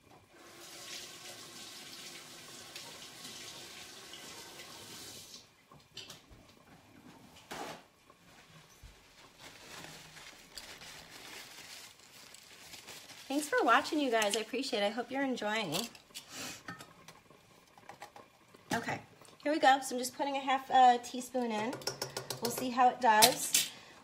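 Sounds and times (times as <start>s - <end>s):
faucet running faintly: 0.3s - 6.8s, 13.4s - 23.9s.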